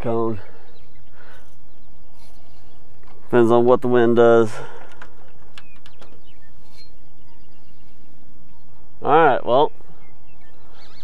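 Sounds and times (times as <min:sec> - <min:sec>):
faint bird chirps: 0:05.2 - 0:11.0.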